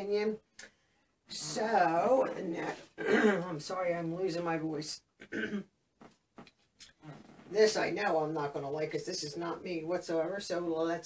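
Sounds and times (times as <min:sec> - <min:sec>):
woman clearing her throat: 0:03.0 - 0:03.5, 0:05.2 - 0:05.7.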